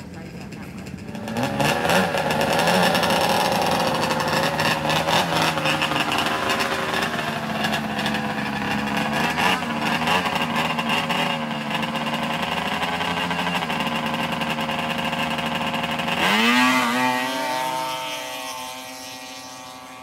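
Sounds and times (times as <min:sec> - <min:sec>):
snowmobile engine idling: 0:00.0 - 0:20.0.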